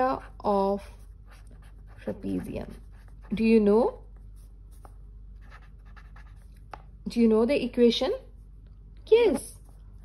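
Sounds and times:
pen scratching on paper: 0:00.0 - 0:06.7.

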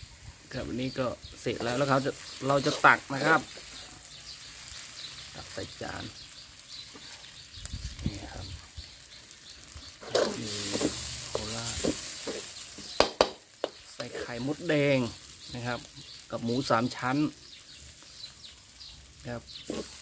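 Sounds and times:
noodles sizzling in a pan: 0:00.0 - 0:20.0
spatula scraping: 0:01.4 - 0:05.0, 0:10.0 - 0:14.7, 0:19.6 - 0:20.0.

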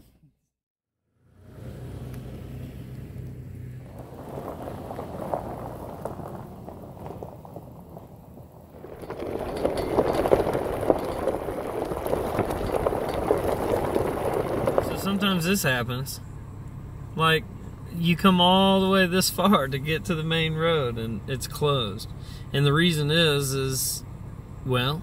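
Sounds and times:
low engine hum: 0:01.0 - 0:25.0
tyres crackling on gravel: 0:01.7 - 0:25.0.

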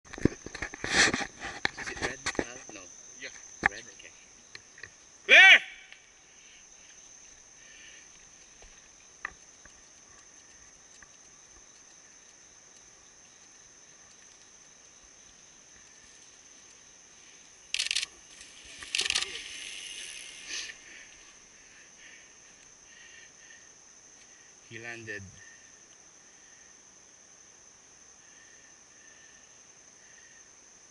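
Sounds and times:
insects droning: 0:00.0 - 0:30.9
bike tyres crunching on dirt: 0:06.8 - 0:21.8.

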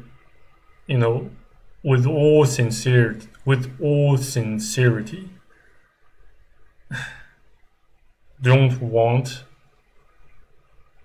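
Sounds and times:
man sighing: 0:06.9 - 0:07.4.

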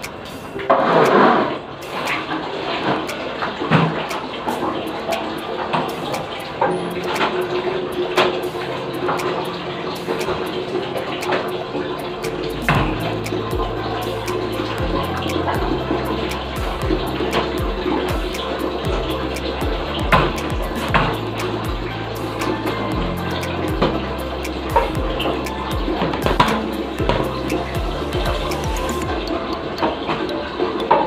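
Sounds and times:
background music: 0:00.0 - 0:31.0.

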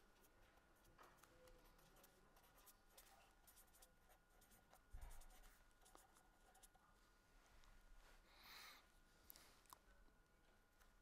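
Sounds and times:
marker scratching on paper: 0:01.5 - 0:06.8.

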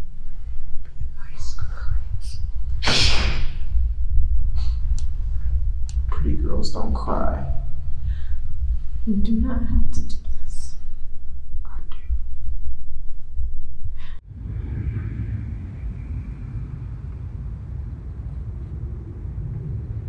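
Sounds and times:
loud low rumble: 0:00.0 - 0:20.0
faint whispered breath: 0:07.9 - 0:09.0, 0:14.0 - 0:17.2
low hum of street traffic: 0:14.2 - 0:20.0.

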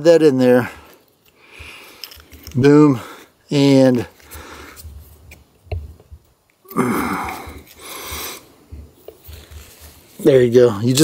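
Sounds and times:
breaths through the nose: 0:00.8 - 0:02.4, 0:04.2 - 0:05.0, 0:06.7 - 0:08.7.

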